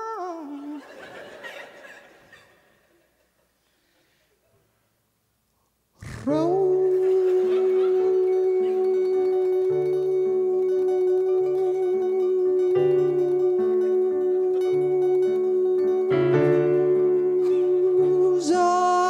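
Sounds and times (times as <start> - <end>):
man singing a long note: 0.0 - 0.8, 6.0 - 19.0
keyboard chords: 6.4 - 19.0.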